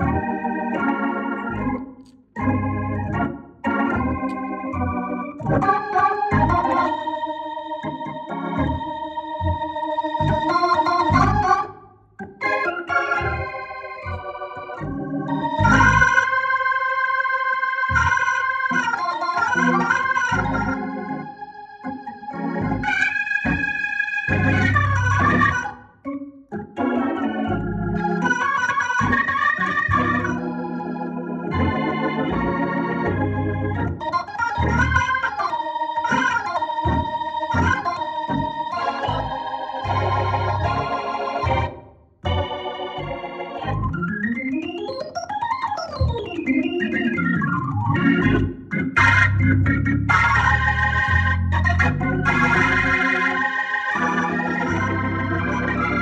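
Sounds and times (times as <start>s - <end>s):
low organ bass notes: 0.0s - 56.0s
organ chords and runs: 0.0s - 56.0s.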